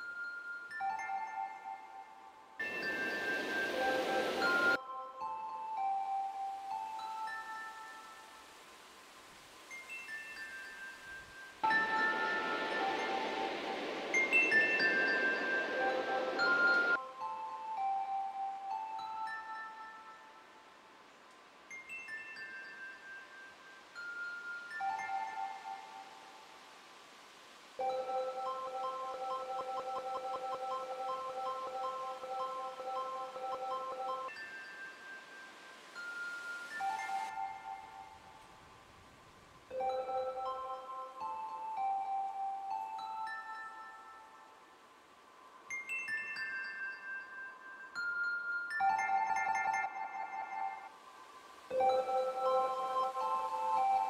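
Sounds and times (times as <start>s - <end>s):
synthesizer chime tones: 0.8s - 5.2s, 11.6s - 17.4s, 27.8s - 34.6s, 48.8s - 50.9s, 51.7s - 54.0s.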